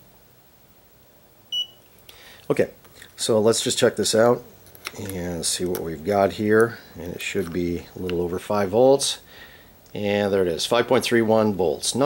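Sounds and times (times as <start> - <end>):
clamp meter beep: 1.5 - 1.8.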